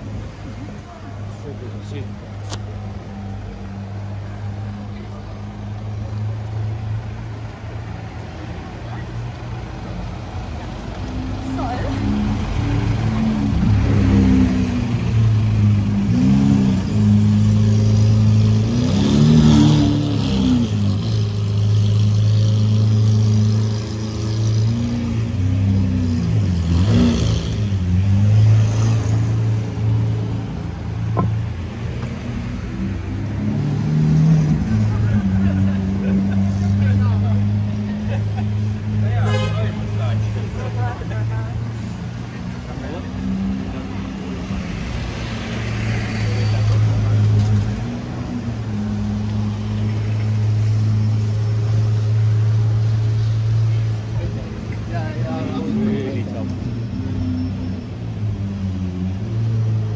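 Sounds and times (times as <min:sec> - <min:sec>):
people's voices: 0:00.0 - 0:06.8, 0:07.4 - 0:16.8, 0:34.5 - 0:49.4, 0:53.6 - 0:57.8
vehicle engines passing: 0:00.0 - 0:59.9.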